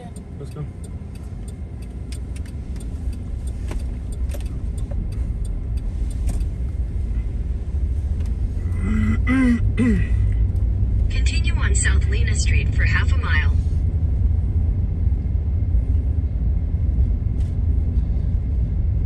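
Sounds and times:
car road and engine rumble: 0.0 - 19.0
faint ticks: 0.1 - 6.7.

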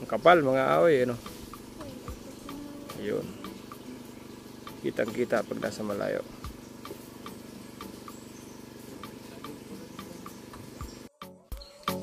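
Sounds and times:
small engine humming: 0.0 - 11.2.

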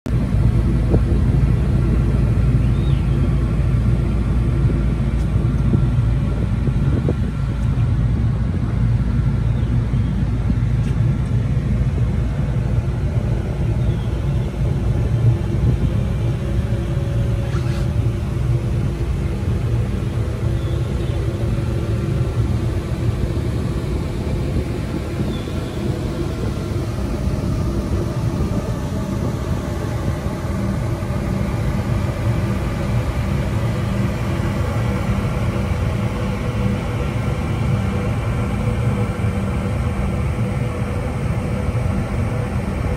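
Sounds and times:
ferry engine rumbling: 0.1 - 42.9.

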